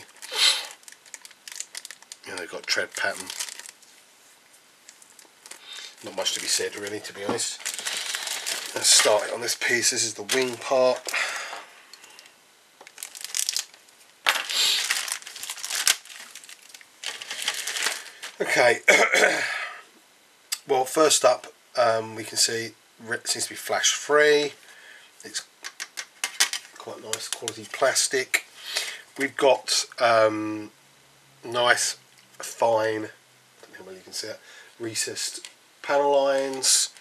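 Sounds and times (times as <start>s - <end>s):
plastic bag crinkling: 0.0s - 4.0s, 4.8s - 11.4s, 12.0s - 18.5s, 36.2s - 37.0s.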